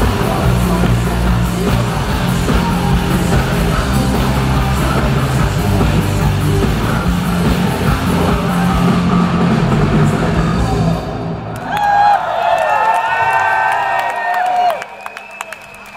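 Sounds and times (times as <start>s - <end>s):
rock band playing loudly: 0.0s - 11.5s
crowd cheering and whooping: 11.5s - 15.9s.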